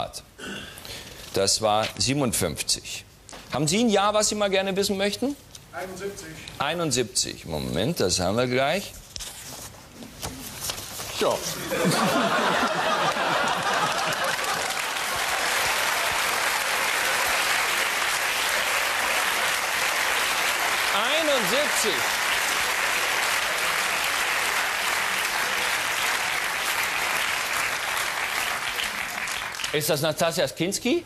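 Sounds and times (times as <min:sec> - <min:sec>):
audience applauding: 0:11.7 - 0:30.0.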